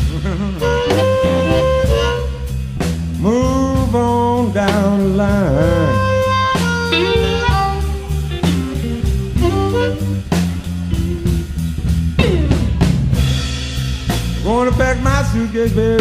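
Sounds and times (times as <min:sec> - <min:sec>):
lead electric guitar bending notes: 0:00.0 - 0:02.6, 0:05.4 - 0:13.5
blues band playing: 0:00.0 - 0:16.0.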